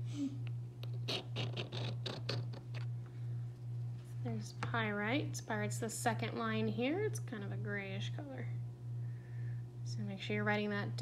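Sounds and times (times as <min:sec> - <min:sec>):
mineral scratching on porcelain: 0:01.0 - 0:02.9.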